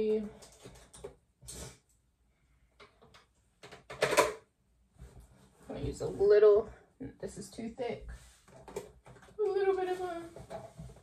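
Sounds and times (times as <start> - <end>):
clicks and knocks of makeup tools: 2.8 - 4.4.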